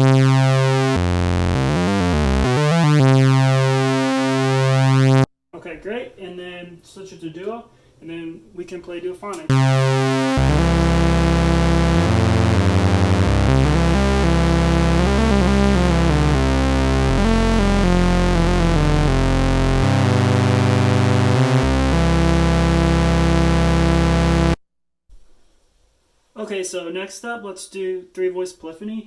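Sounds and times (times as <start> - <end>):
analog synthesizer notes: 0.0 - 5.3, 9.5 - 24.6.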